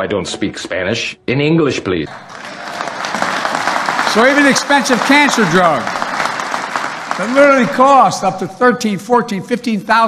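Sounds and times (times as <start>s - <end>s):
audience applauding: 2.1s - 8.6s.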